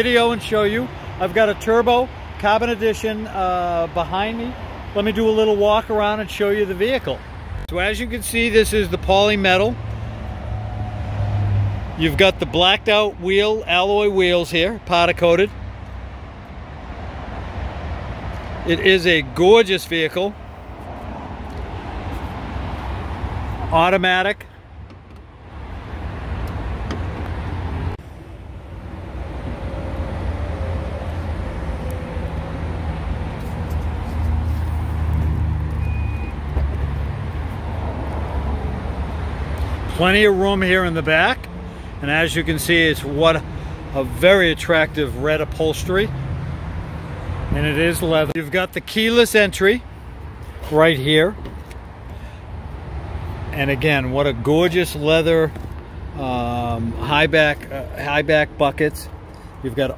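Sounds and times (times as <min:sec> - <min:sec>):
traffic rumble: 0:00.0 - 0:59.9.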